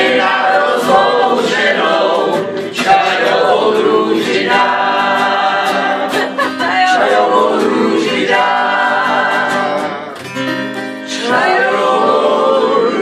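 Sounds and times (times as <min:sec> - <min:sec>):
group singing: 0:00.0 - 0:10.2, 0:10.9 - 0:13.0
strummed acoustic guitar: 0:00.0 - 0:13.0.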